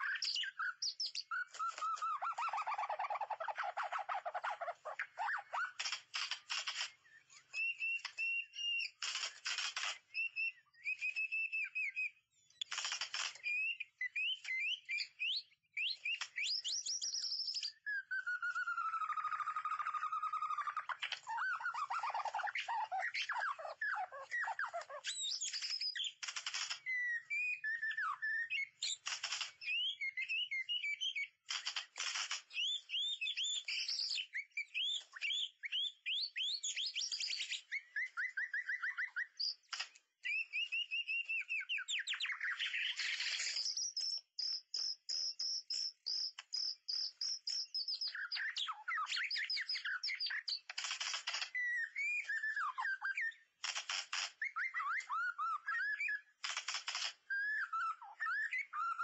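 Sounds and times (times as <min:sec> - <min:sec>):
songbird singing: 0:00.0 - 0:31.5, 0:32.5 - 0:50.7, 0:51.3 - 0:53.6, 0:57.2 - 0:59.0.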